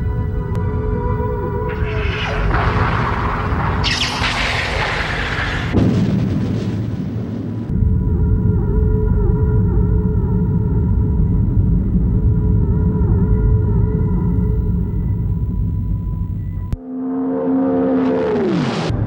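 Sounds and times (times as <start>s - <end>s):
low rumble: 0.0s - 16.8s
sci-fi explosions: 1.6s - 8.8s.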